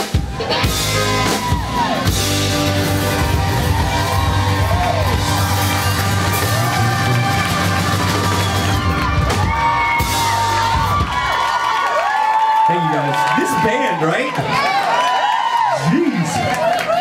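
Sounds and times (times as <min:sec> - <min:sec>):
live rock band playing: 0:00.0 - 0:11.6
audience whooping and cheering: 0:00.1 - 0:17.0.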